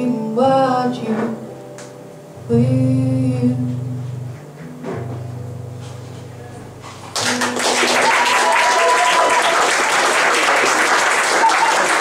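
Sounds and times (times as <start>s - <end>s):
acoustic guitar strumming: 0.4s - 8.0s.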